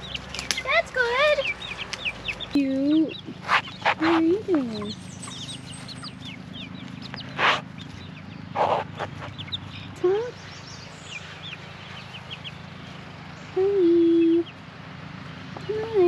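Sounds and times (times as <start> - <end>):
chicks peeping: 0.0 - 16.0.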